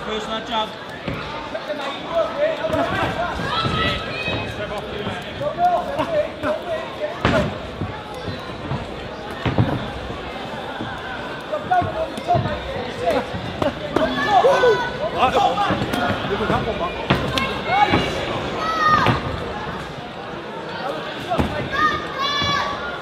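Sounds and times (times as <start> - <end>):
people shouting: 13.9 - 15.8.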